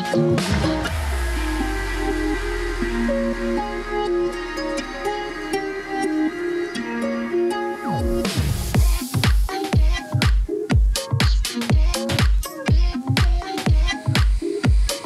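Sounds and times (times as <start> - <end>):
held low bass: 0.0 - 9.0
dance beat: 0.0 - 15.0
electronic dance music: 0.0 - 15.0.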